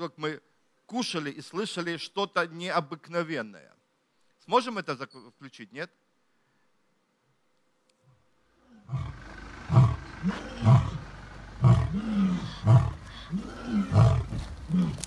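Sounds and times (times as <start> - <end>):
lion roaring: 8.6 - 15.0.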